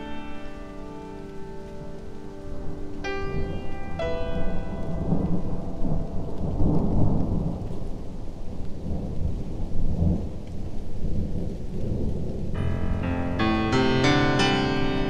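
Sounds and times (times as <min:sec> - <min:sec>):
ringing chord: 0:12.6 - 0:15.0.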